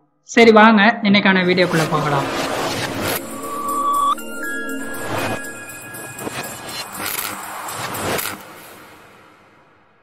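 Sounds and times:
whooshing sound effects: 1.5s - 10.0s.

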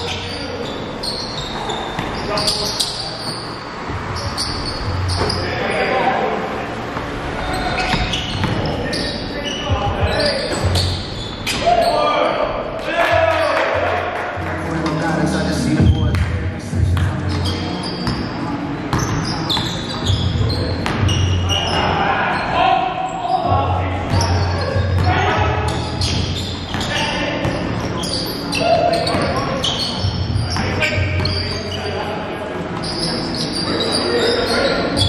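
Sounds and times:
sneaker squeaks: 0.0s - 6.2s, 6.8s - 13.8s, 15.6s - 35.0s.

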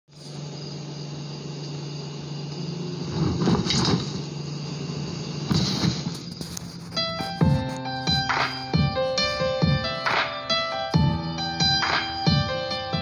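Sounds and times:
steady low hum: 0.1s - 13.0s.

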